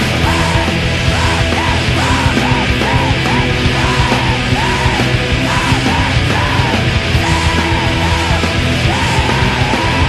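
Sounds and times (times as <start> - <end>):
bass: 0.0 - 10.0
distorted guitars: 0.0 - 10.0
drums: 0.0 - 10.0
shouted vocals: 0.0 - 10.0.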